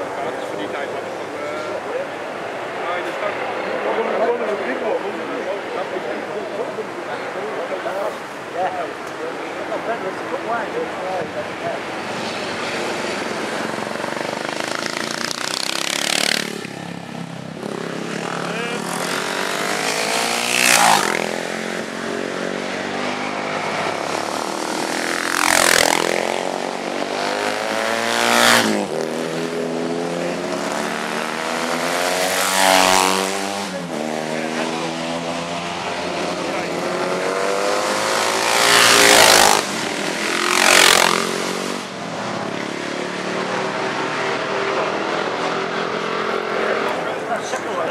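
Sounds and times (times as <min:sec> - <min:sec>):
racing motorcycles passing: 0:00.0 - 0:47.9.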